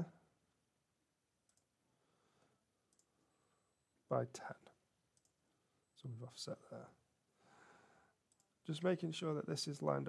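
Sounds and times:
computer mouse clicks: 1.4 - 1.7, 2.9 - 3.1, 5.1 - 5.4, 8.2 - 8.6.

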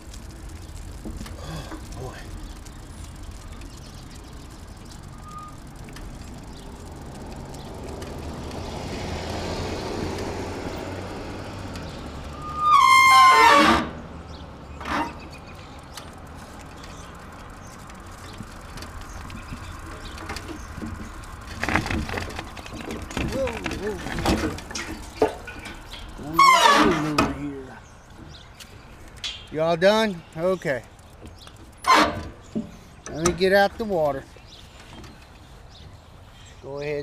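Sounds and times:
car passing: 4.2 - 27.9.

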